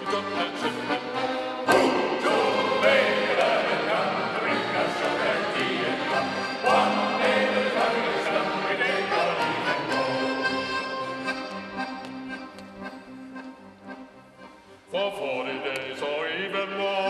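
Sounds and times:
accordion and violin playing: 0.0 - 17.0.

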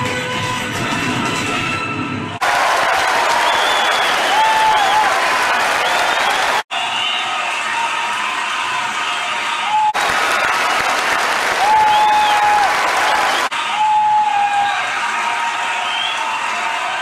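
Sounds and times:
music: 0.0 - 2.4, 6.7 - 12.0, 13.5 - 17.0
audience applauding and cheering: 2.4 - 17.0
whistles from audience: 3.0 - 8.5, 11.6 - 14.8, 15.5 - 16.8.

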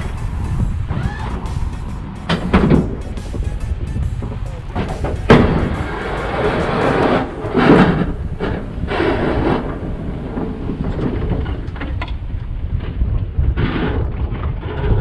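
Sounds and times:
engine rushing surges: 0.0 - 12.4
pickup truck engine rumbling: 0.0 - 13.4.

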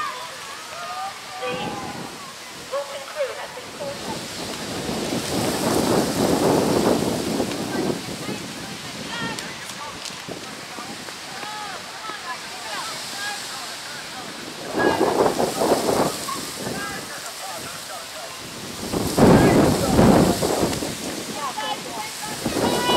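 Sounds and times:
loud rushes of noise: 0.0 - 22.9
wind noise on microphone: 1.2 - 22.9.

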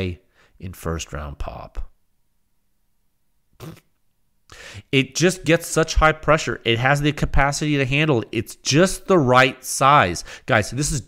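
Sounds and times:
puff of breath: 4.5 - 4.9, 10.2 - 10.5.

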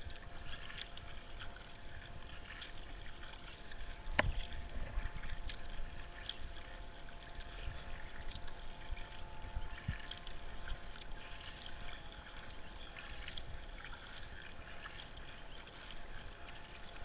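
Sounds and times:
kayak paddle splashing water: 0.0 - 17.0.

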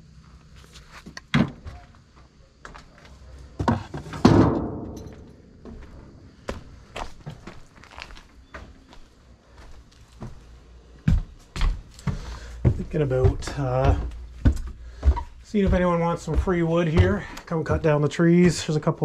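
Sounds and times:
light steps and knocks: 0.4 - 19.0
junk thudding into metal dumpster: 4.0 - 5.2
heavy thumps: 11.1 - 19.0.

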